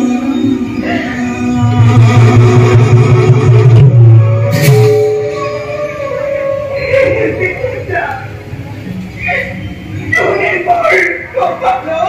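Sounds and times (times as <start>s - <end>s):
loud low drone: 0.0s - 7.6s
performance music: 0.0s - 12.0s.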